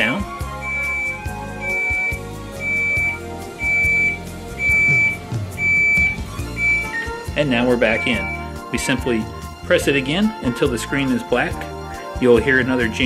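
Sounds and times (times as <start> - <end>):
background music: 0.0 - 13.0
refrigerator control panel beeping: 0.6 - 7.2, 7.8 - 8.5.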